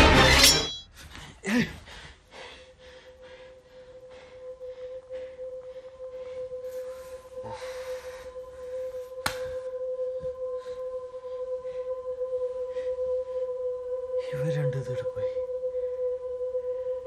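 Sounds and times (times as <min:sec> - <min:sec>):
ringing pure tone drone: 0:00.0 - 0:00.9.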